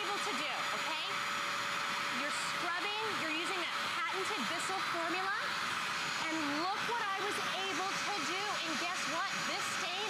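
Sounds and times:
carpet cleaner motor whine: 0.0s - 10.0s.

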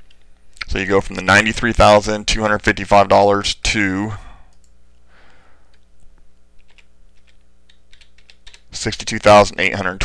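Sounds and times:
low electrical hum: 0.0s - 10.0s
computer keyboard typing clicks: 6.6s - 8.7s.

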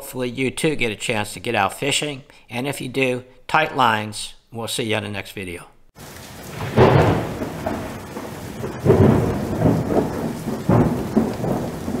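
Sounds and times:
rolls of thunder: 6.0s - 12.0s
steady rain: 6.0s - 12.0s.

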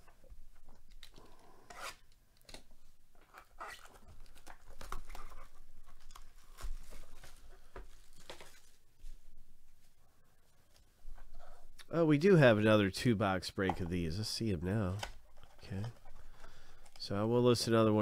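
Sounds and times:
plastic wrap tearing and crackling: 3.4s - 8.8s.

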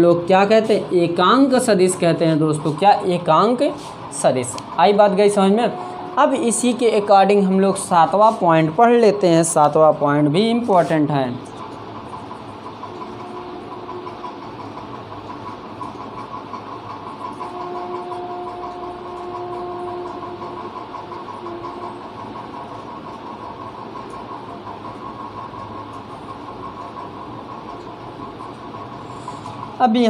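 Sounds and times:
steady mechanical hum: 0.0s - 30.0s.

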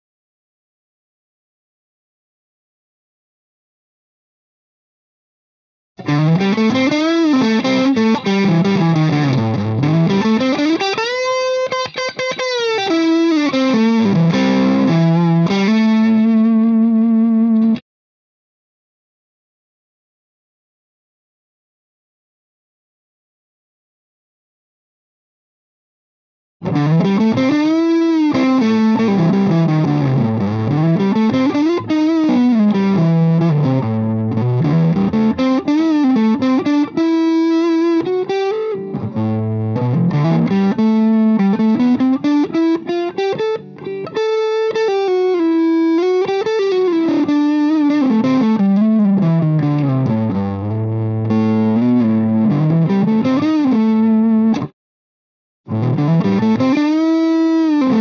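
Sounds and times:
overdriven electric guitar lead: 6.0s - 17.8s, 26.6s - 54.7s, 55.7s - 58.0s.

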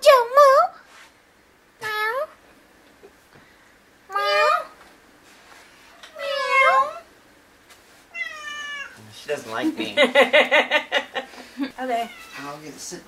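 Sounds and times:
cat meowing: 4.1s - 4.8s, 6.1s - 7.1s, 8.1s - 9.0s, 12.0s - 12.5s
person laughing: 9.9s - 11.7s.

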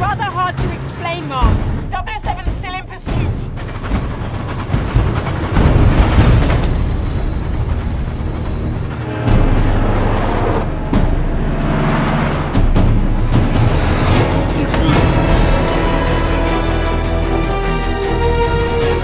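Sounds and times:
dramatic film score: 0.0s - 19.0s
moving train rumble: 0.0s - 19.0s.

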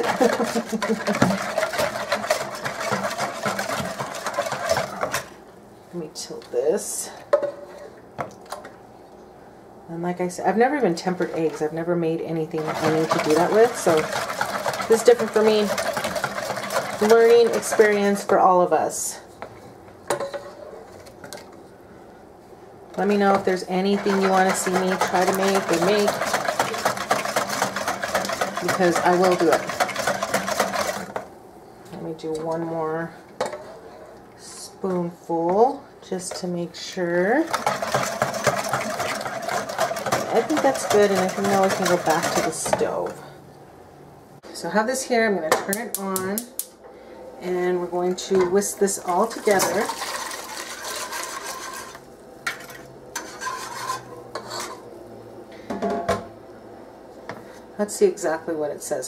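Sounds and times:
whisk clicking against bowl: 0.0s - 5.3s, 12.6s - 18.3s, 23.0s - 31.2s, 37.5s - 42.8s
liquid pouring: 49.4s - 51.9s.

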